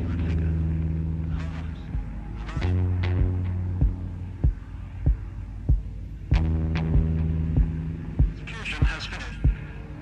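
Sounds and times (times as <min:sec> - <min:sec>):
loud low drone: 0:00.0 - 0:10.0.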